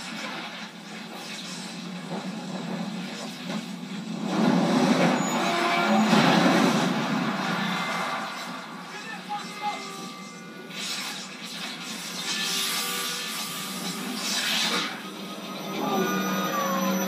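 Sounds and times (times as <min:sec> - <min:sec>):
explosion and fire roar: 0:00.0 - 0:09.3.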